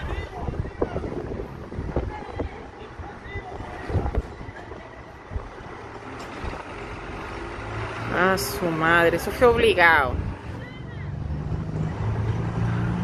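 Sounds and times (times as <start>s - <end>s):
wind buffeting microphone: 0.0s - 7.2s, 8.8s - 13.0s
faint distant voices: 0.0s - 12.9s
street and vehicle noise: 0.0s - 13.0s.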